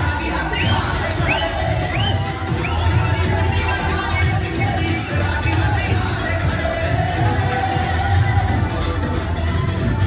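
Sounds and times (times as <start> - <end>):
dance music with heavy bass beat: 0.0 - 10.0
group cheering and shouting: 0.0 - 10.0.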